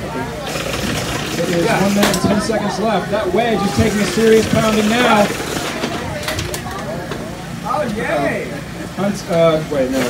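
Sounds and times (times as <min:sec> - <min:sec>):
low mechanical hum: 0:00.0 - 0:10.0
other voices: 0:00.0 - 0:10.0.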